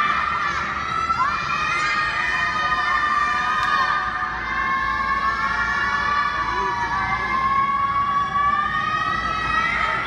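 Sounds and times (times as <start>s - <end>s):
children shouting together: 0.0s - 10.0s.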